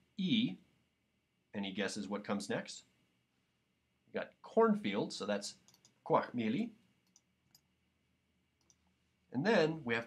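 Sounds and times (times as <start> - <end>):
faint computer clicks: 5.6 - 6.0, 7.0 - 7.7.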